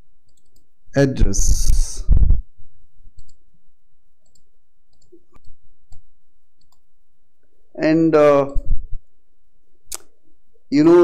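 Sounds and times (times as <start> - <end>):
low room noise: 0.0 - 11.0
computer mouse clicks: 0.3 - 0.7, 3.2 - 3.4, 4.2 - 6.9.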